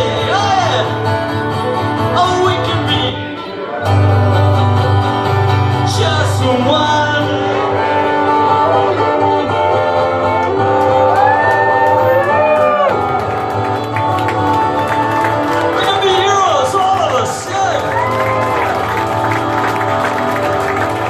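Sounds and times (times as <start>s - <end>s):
acoustic guitar: 0.0s - 21.0s
fiddle melody: 0.0s - 21.0s.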